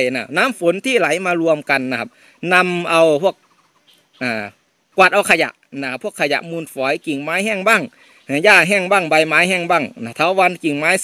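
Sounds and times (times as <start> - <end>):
man speaking slowly: 0.0 - 3.4, 4.2 - 11.0.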